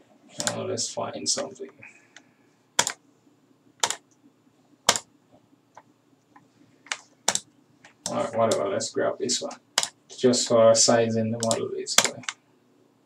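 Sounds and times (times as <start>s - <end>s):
faint low hum: 0.0s - 13.0s
keyboard and mouse clicks: 0.4s - 0.6s, 2.8s - 3.0s, 3.8s - 4.2s, 4.9s - 5.1s, 6.9s - 8.6s, 9.8s - 10.0s, 11.4s - 12.4s.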